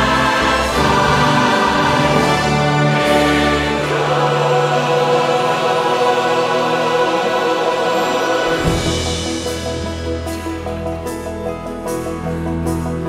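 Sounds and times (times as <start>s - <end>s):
choir singing held chords: 0.0s - 10.2s
orchestra playing: 0.0s - 13.0s.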